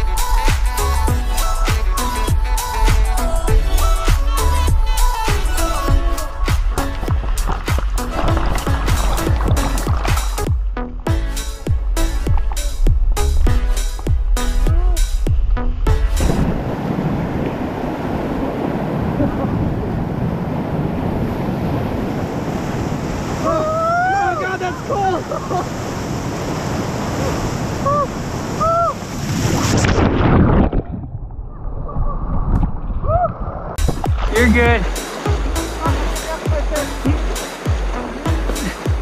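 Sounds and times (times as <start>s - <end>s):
whitewater rushing against raft: 0.4s - 10.5s, 16.2s - 30.6s, 33.8s - 39.0s
people yelling: 23.4s - 25.4s.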